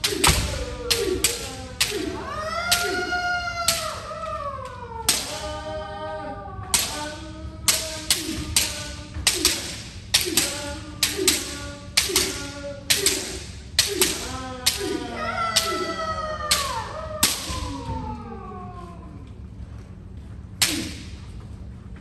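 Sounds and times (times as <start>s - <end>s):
long shouts: 0.4s - 8.8s, 13.9s - 19.2s.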